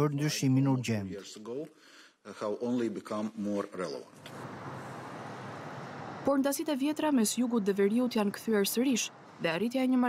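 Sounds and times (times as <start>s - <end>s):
distant traffic: 4.2s - 10.0s.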